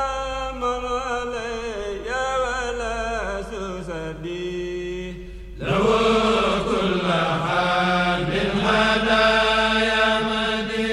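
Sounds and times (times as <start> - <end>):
vocal chanting: 0.0 - 10.9.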